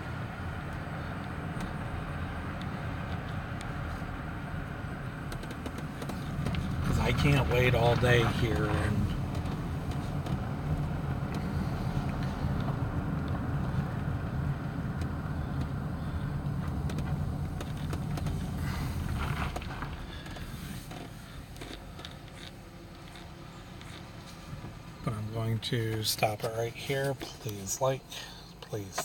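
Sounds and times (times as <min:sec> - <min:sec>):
engine and road rumble in car: 0:00.0 - 0:29.0.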